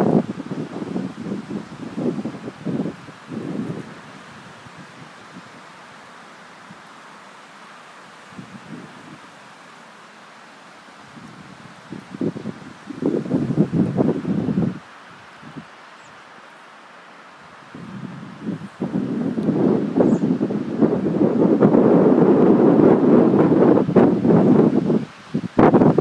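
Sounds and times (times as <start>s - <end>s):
wind gusting across microphone: 0.0s - 16.0s, 17.4s - 26.0s.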